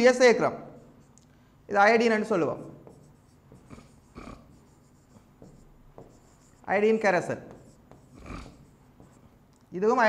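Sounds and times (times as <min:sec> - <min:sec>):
stylus scratching on tablet: 0:02.6 - 0:09.3.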